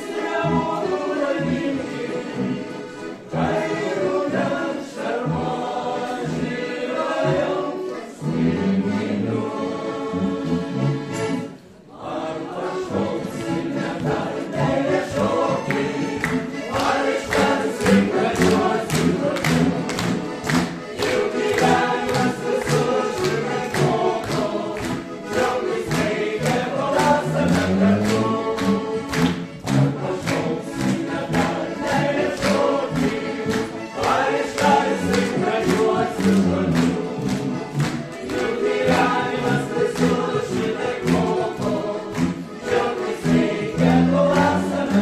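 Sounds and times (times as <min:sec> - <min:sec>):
accordions: 0:00.0 - 0:45.0
mixed choir singing in harmony: 0:00.0 - 0:45.0.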